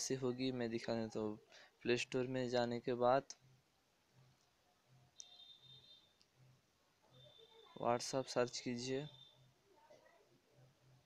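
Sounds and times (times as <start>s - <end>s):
faint high-pitched tone: 4.2s - 11.0s
faint clicks: 4.3s - 5.4s.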